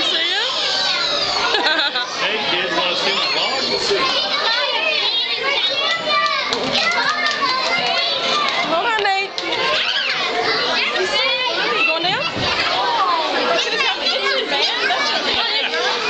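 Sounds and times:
children talking and calling out: 0.0 - 16.0.

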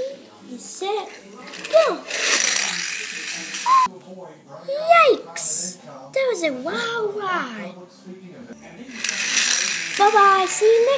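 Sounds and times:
voice: 0.0 - 7.8, 8.7 - 10.9
toy car rolling on tiles: 1.0 - 3.7, 8.9 - 10.9
short voice-like call: 3.7 - 3.9.

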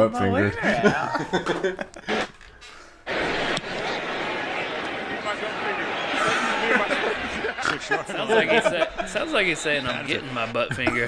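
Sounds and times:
muffled crowd noise hiss: 3.0 - 11.0.

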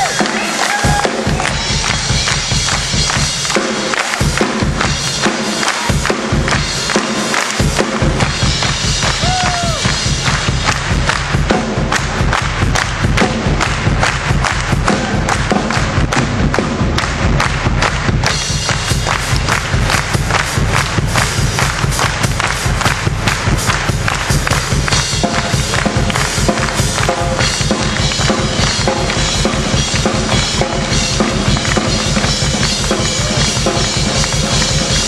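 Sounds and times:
live rock and roll band: 0.0 - 35.0
loud steady drum beat: 0.0 - 35.0.

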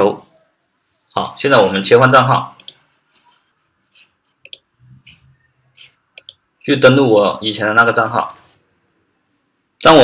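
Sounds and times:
computer mouse clicks: 2.6 - 2.8, 4.3 - 5.2, 5.8 - 6.4.

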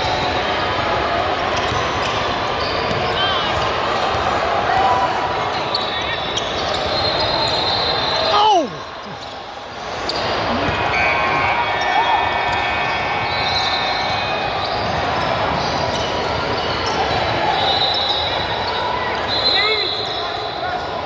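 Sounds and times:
voices echoing in a hall: 0.0 - 21.0.

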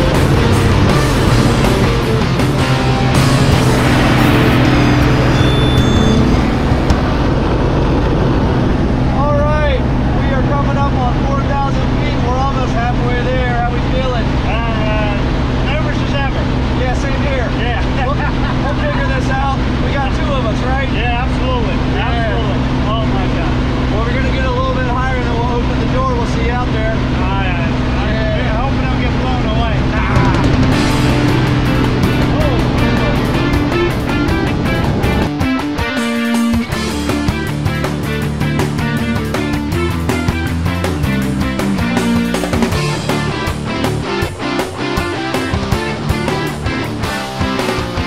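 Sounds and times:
propeller plane engine droning: 0.0 - 48.0
people talking and laughing: 9.2 - 35.3.

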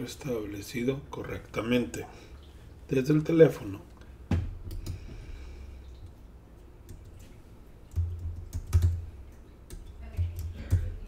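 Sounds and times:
typing on computer keyboard: 7.9 - 9.1, 9.7 - 11.0.

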